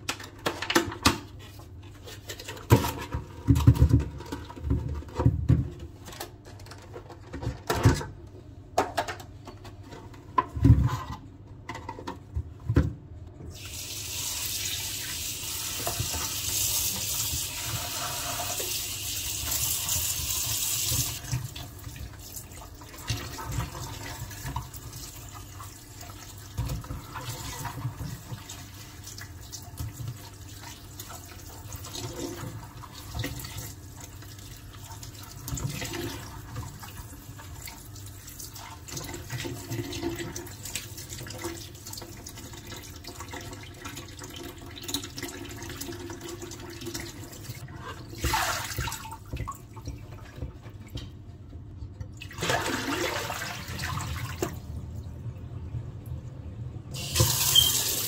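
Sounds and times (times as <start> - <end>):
tap running water: 13.5 - 54.6, 57.0 - 58.0.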